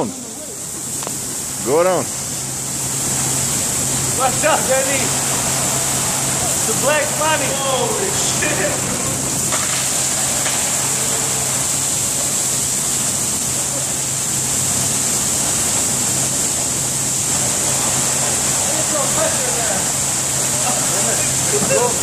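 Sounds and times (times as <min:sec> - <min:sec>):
water spraying from burst pipe: 0:00.0 - 0:22.0.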